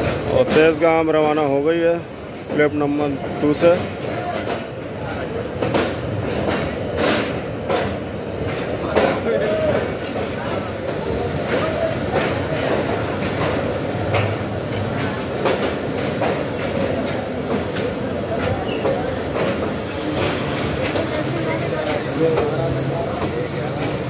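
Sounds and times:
crowd chatter: 0:00.0 - 0:24.0
train wheels clacking over rail joints: 0:00.0 - 0:24.0.

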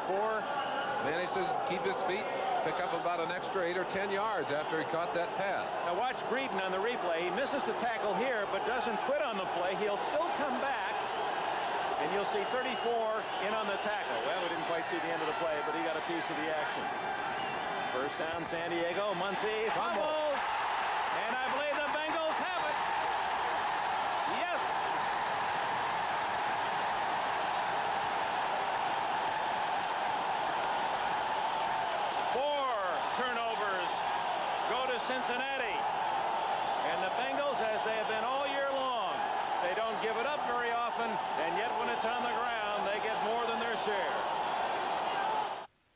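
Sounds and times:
stadium crowd roaring: 0:00.0 - 0:45.7
man talking: 0:01.0 - 0:11.0, 0:12.0 - 0:16.8, 0:18.0 - 0:20.4, 0:21.2 - 0:22.8, 0:32.4 - 0:34.0, 0:34.6 - 0:35.8, 0:36.8 - 0:44.2.

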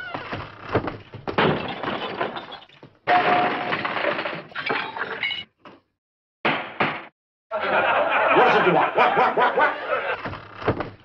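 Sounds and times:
crash and clatter of breaking glass: 0:01.1 - 0:05.5.

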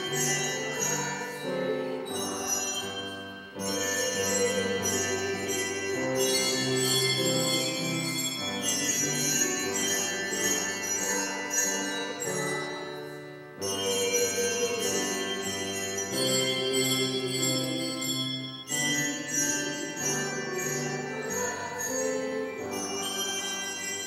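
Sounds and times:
handbell choir ringing chords: 0:00.0 - 0:24.0.

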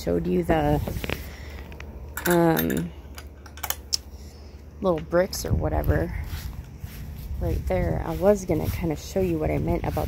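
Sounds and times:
woman speaking: 0:00.0 - 0:01.1, 0:02.2 - 0:03.0, 0:04.8 - 0:06.4, 0:07.4 - 0:10.0
low steady background hum: 0:00.0 - 0:10.0.

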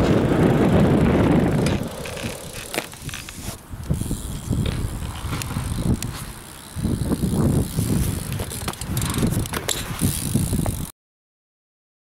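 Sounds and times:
bike clicks and knocks: 0:00.0 - 0:10.9
bike tyres rolling on concrete: 0:00.0 - 0:10.9.

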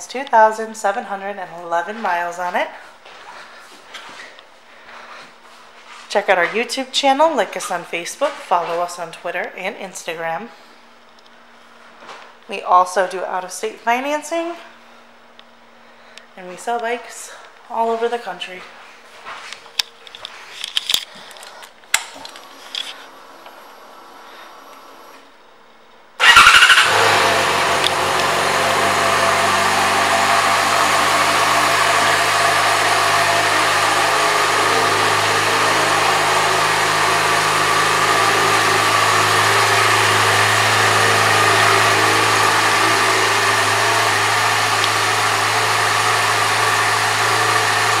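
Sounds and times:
motorcycle engine starting and idling: 0:26.2 - 0:48.0.

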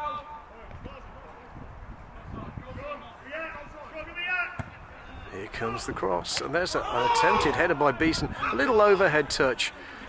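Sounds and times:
wind rumble on microphone: 0:00.7 - 0:03.0
faint voices calling out: 0:06.7 - 0:10.0.

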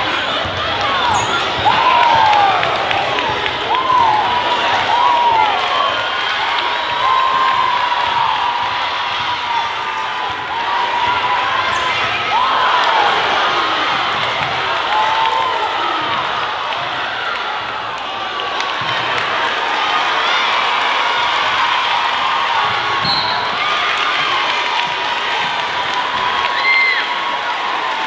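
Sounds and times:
crowd cheering: 0:00.0 - 0:28.0
sneakers squeaking: 0:00.1 - 0:01.9, 0:23.0 - 0:23.7.

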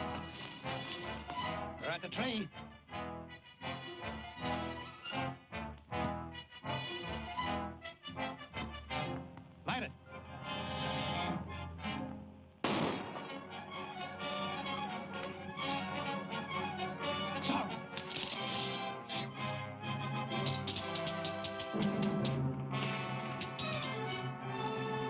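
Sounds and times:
orchestral chords: 0:18.8 - 0:25.0.

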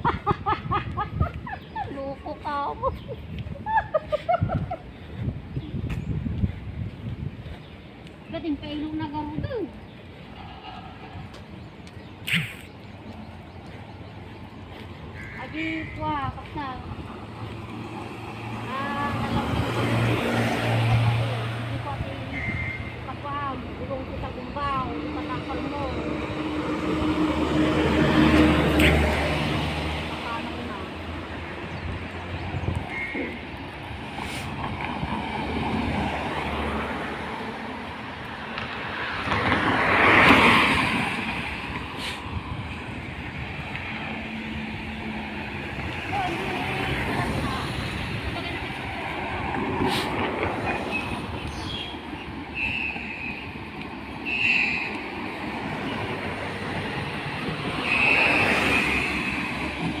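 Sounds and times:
steady street noise: 0:00.0 - 1:00.0
vehicles passing: 0:00.0 - 1:00.0.

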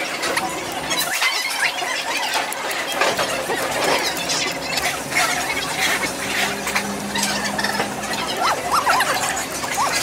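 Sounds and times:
high chirps and squeaks: 0:00.8 - 0:10.0.

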